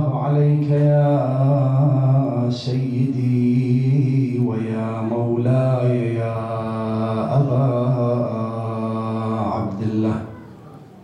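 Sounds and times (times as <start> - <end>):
man chanting: 0.0 - 10.5.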